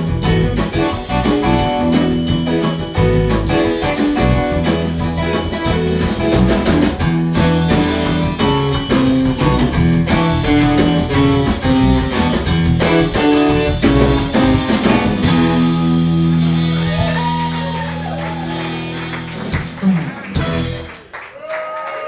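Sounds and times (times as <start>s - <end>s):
live band playing soul song: 0.0s - 21.1s
drum kit: 0.0s - 21.2s.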